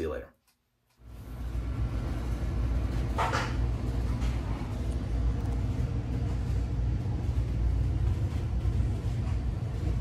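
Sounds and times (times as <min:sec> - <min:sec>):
low rumble with faint hiss: 0:01.0 - 0:10.0.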